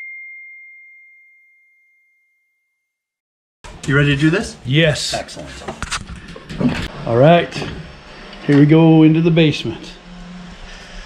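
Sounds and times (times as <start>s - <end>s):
bell-like ding ringing: 0.0s - 2.7s.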